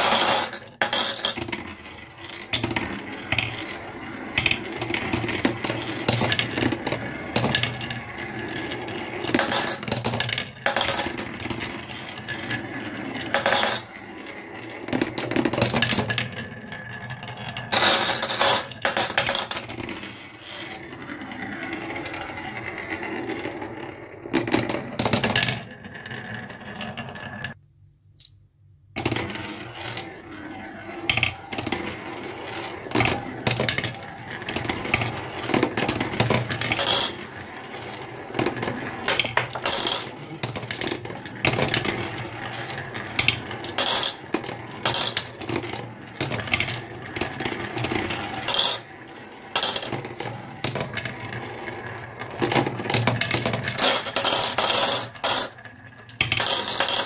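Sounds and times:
marbles clacking: 0:00.0 - 0:27.6, 0:29.0 - 0:57.0
marbles rolling on wooden track: 0:00.0 - 0:27.6, 0:29.0 - 0:57.0.

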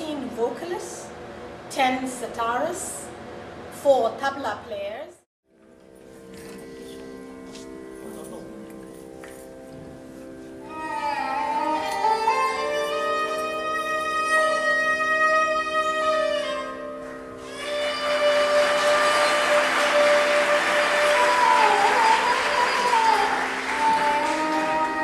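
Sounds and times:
sitar ensemble: 0:05.5 - 0:25.0
gliding melody: 0:05.6 - 0:25.0.

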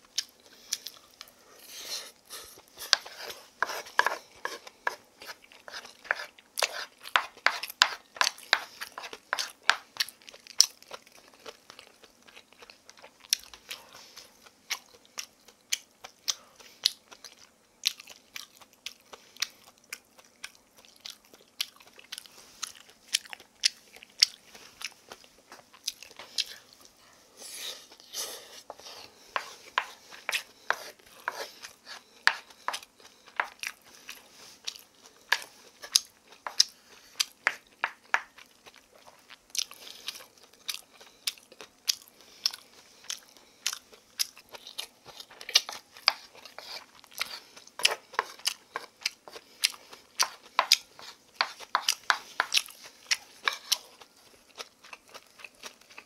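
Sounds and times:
wooden spoon mixing in wooden bowl: 0:02.8 - 0:09.8, 0:27.7 - 0:32.8, 0:45.6 - 0:49.4, 0:50.2 - 0:52.5, 0:53.4 - 0:53.9
chewing with sharp clicks: 0:14.4 - 0:26.9, 0:32.3 - 0:56.0.

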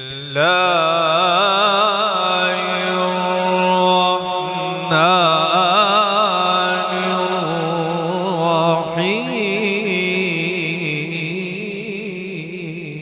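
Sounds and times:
man reciting melodically: 0:00.0 - 0:13.0.

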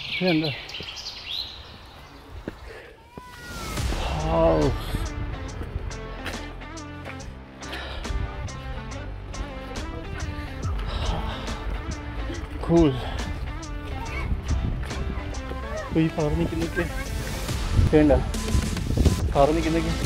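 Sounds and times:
birds chirping: 0:00.0 - 0:17.6
background music with steady beat: 0:03.7 - 0:20.0.

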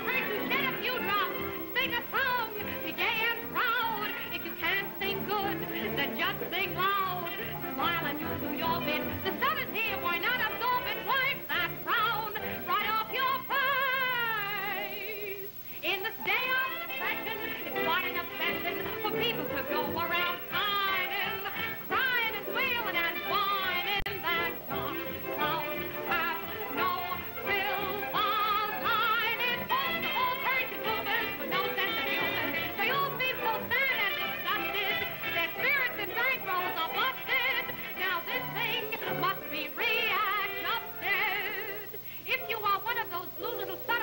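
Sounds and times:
woman singing with vibrato: 0:00.0 - 0:44.0.

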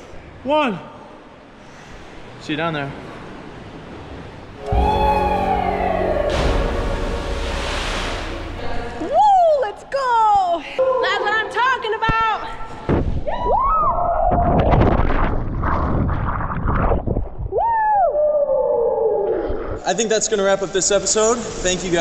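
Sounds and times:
woman screaming and whooping: 0:04.7 - 0:06.7, 0:09.0 - 0:10.5
churning water: 0:05.0 - 0:09.1
splash into deep water: 0:06.2 - 0:09.0.

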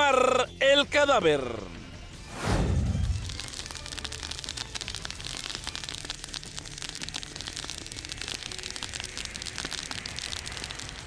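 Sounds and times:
grass fire crackling: 0:02.2 - 0:11.0
low fire rumble: 0:02.2 - 0:11.0.

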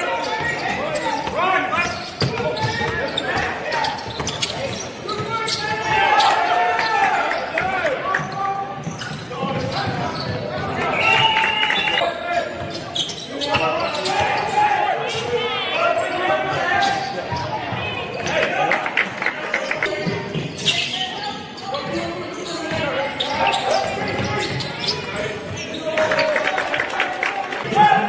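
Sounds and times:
players' voices and calls: 0:00.0 - 0:28.0.

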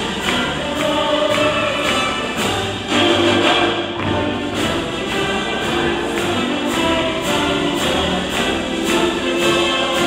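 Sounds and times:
hands clapping on the beat: 0:00.0 - 0:10.0
orchestra and choir performing: 0:00.0 - 0:10.0.

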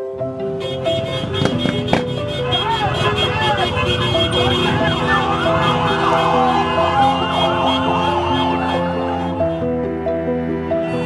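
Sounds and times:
sirens wailing: 0:00.7 - 0:09.6.

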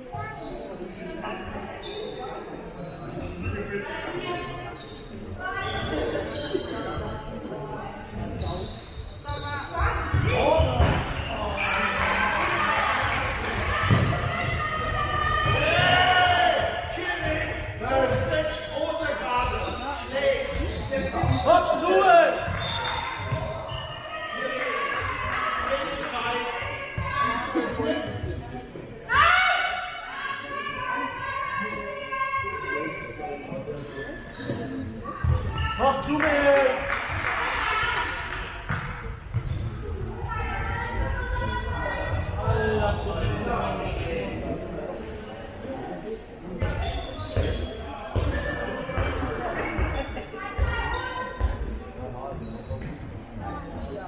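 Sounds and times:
ball bouncing on hall floor: 0:13.4 - 0:16.1, 0:38.3 - 0:40.4, 0:46.6 - 0:51.8.

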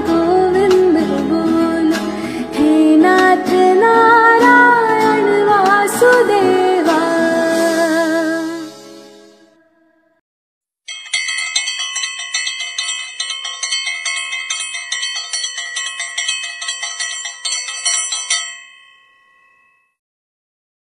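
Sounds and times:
bell ringing rapidly: 0:10.9 - 0:19.9.

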